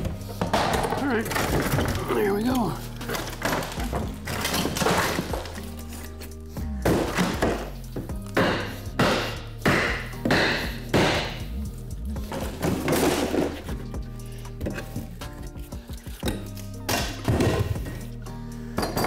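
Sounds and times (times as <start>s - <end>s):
background music: 0.0s - 19.0s
wooden wall cracking and thudding: 3.0s - 5.6s.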